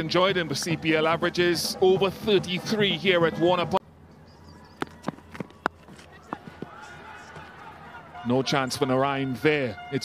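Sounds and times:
faint ground ambience: 0:02.8 - 0:09.7.

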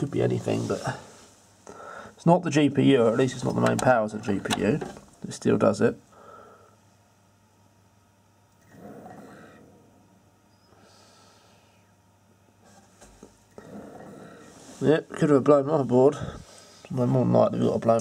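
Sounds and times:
faint breathy noise: 0:00.4 - 0:02.2, 0:06.1 - 0:07.0, 0:08.6 - 0:12.0, 0:12.6 - 0:15.1, 0:16.0 - 0:17.1.

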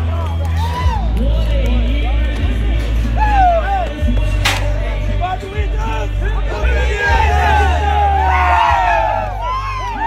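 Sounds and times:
men cheering and whooping: 0:00.0 - 0:01.3, 0:03.1 - 0:04.0, 0:06.6 - 0:10.0.

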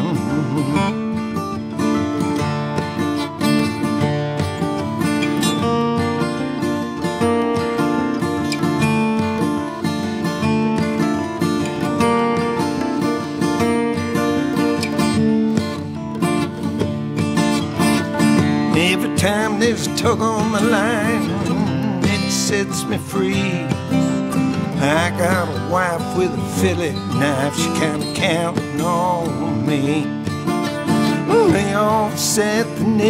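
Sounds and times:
strummed acoustic guitar: 0:00.0 - 0:33.0.

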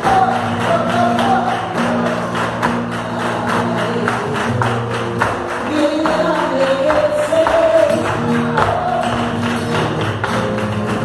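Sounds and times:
flamenco music: 0:00.0 - 0:11.0
sharp rhythmic beats: 0:00.0 - 0:11.0.

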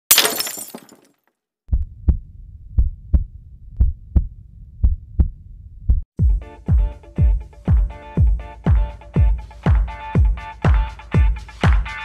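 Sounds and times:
glass breaking crash: 0:00.1 - 0:01.2
heartbeat thumps: 0:01.7 - 0:10.4.

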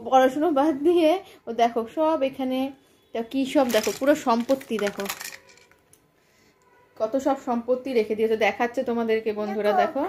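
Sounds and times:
plastic toys clattering: 0:03.5 - 0:06.0.

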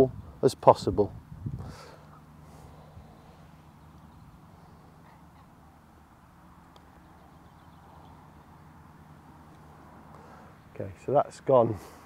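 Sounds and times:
steady low hum: 0:01.1 - 0:12.0
faint bird calls: 0:01.6 - 0:06.1.

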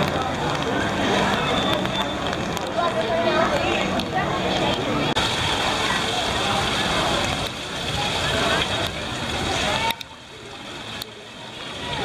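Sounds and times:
many people talking: 0:00.0 - 0:12.0
water falling and splashing: 0:00.0 - 0:12.0.

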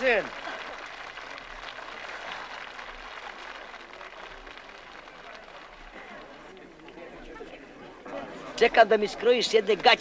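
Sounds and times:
faint voices: 0:03.4 - 0:09.2.

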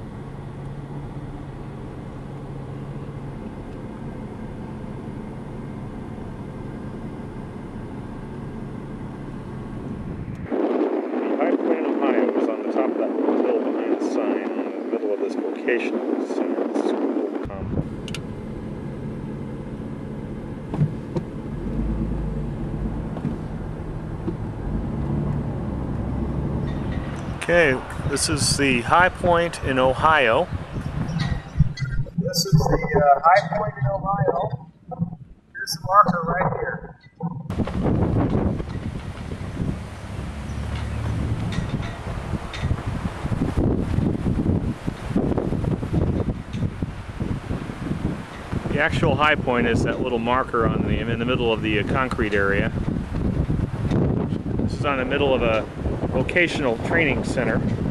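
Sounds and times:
car engine running: 0:00.0 - 0:10.5, 0:17.5 - 0:57.9
wind buffeting microphone: 0:09.6 - 0:18.4, 0:20.6 - 0:57.9.

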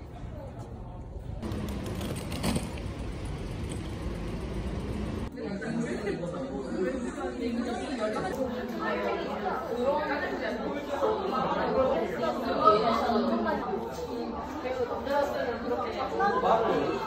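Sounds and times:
chatter of many people: 0:00.0 - 0:01.4, 0:05.2 - 0:17.0.

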